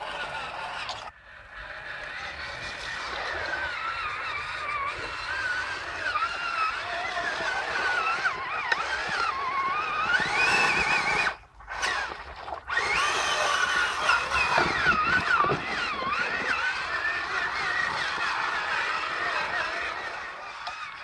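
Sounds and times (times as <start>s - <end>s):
toy truck electric motor whining: 0.0s - 21.0s.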